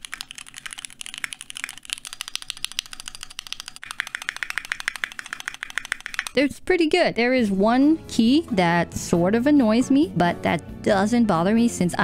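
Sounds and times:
mechanical keyboard typing: 0.0 - 6.4.

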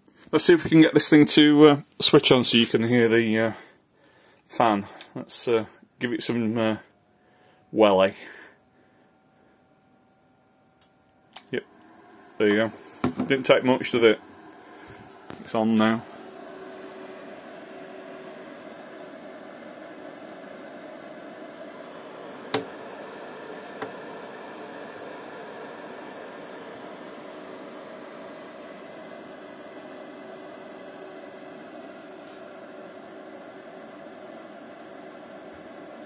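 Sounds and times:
cooling fan whooshing: 11.3 - 36.0.

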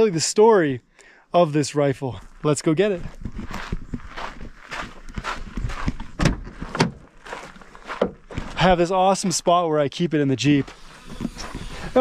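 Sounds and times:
footsteps on gravel: 2.1 - 9.5, 10.4 - 12.0.

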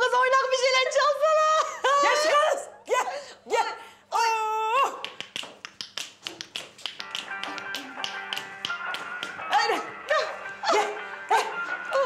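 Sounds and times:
hand taps keeping a beat: 5.0 - 10.6
music with held notes: 7.0 - 12.0.

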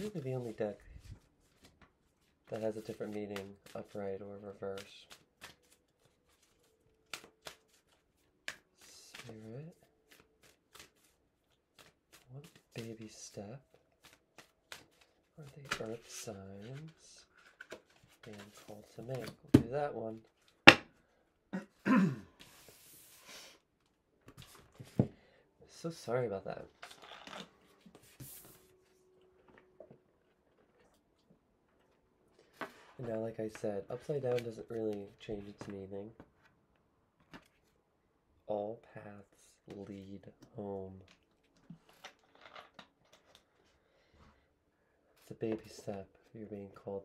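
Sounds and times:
cards being shuffled: 0.0 - 20.7, 26.6 - 28.8.

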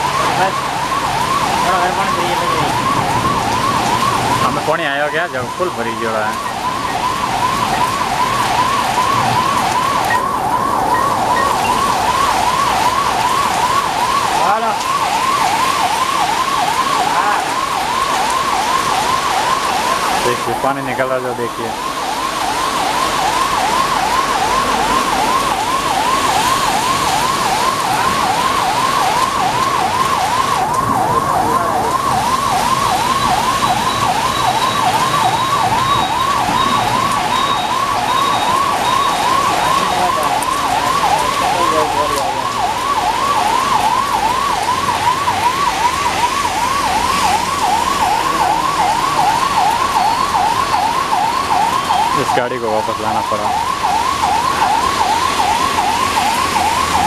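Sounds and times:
heavy rain: 0.0 - 57.0
siren-like warbling tone: 0.0 - 57.0.

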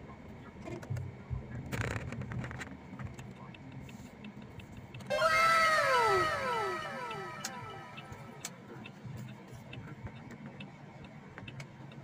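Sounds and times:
tones sliding down in pitch: 5.1 - 8.6.

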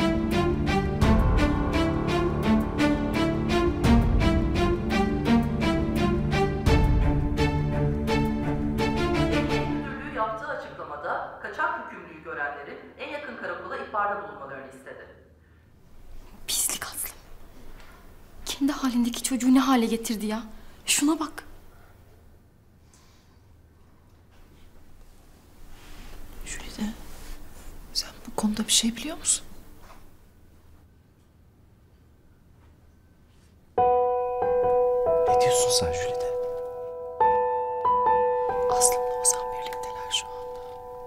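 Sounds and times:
piano chord and notes: 0.0 - 10.0, 33.8 - 41.0
person whispering: 16.4 - 17.3, 35.3 - 36.5, 38.6 - 40.7.

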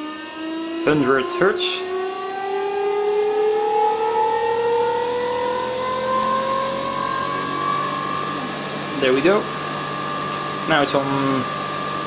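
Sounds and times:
motor rotor whine rising in pitch: 0.0 - 12.0.

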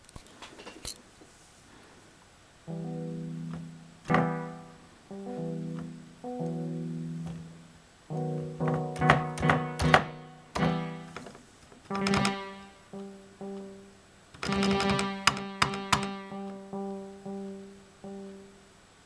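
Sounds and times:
low bass keyboard notes: 2.7 - 11.3, 11.9 - 18.6.

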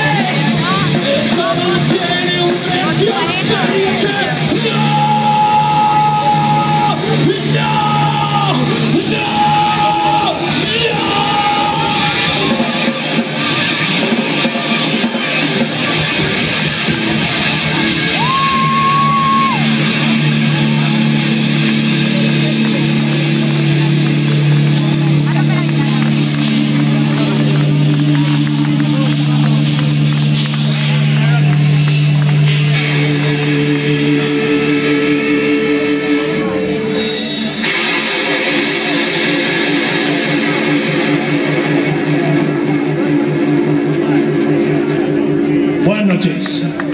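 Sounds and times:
rock band playing live: 0.0 - 46.9.

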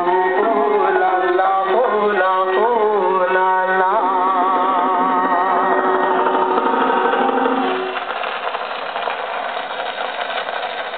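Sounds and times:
singing on gramophone record: 0.0 - 6.8
record surface hiss and crackle: 4.8 - 10.9.

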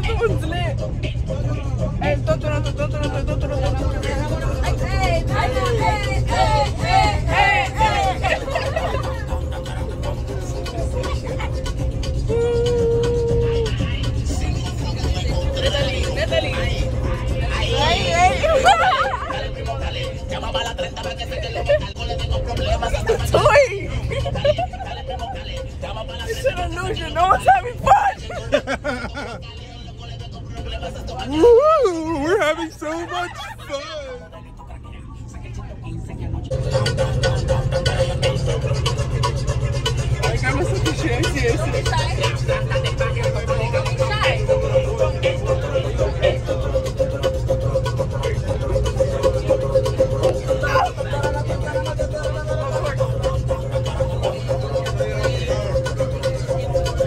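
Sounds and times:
music: 0.0 - 57.0
road and engine rumble: 0.0 - 57.0
voices: 0.0 - 57.0.

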